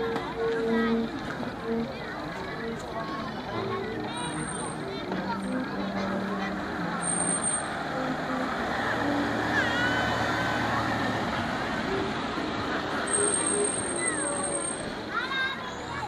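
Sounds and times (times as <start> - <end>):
crowd chatter: 0.0 - 16.0
car driving past: 6.5 - 14.8.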